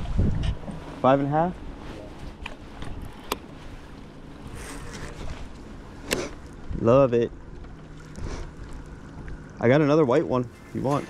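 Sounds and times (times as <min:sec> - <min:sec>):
water around a boat: 0:00.0 - 0:11.0
wind: 0:00.0 - 0:11.0.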